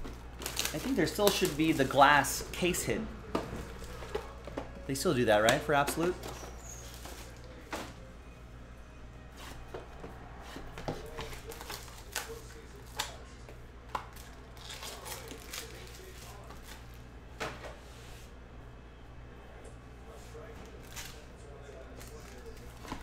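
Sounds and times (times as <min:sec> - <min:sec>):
wrapper and cardboard rustling: 0:00.0 - 0:02.9, 0:11.0 - 0:13.1, 0:14.1 - 0:17.0.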